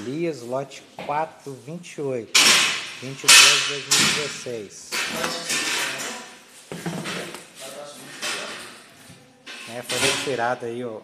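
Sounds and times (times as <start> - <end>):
man talking indistinctly: 3.0 - 6.2, 9.7 - 11.0
metal lid clinking and scraping: 9.5 - 10.4.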